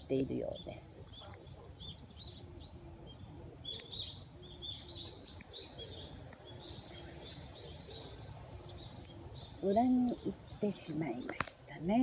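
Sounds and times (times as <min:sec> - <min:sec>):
honeybees humming: 0:00.0 - 0:12.0
small bird chirping: 0:00.0 - 0:12.0.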